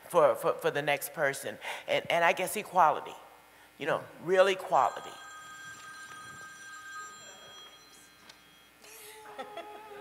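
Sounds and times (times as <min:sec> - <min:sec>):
high-pitched tones ringing: 0:04.6 - 0:09.3.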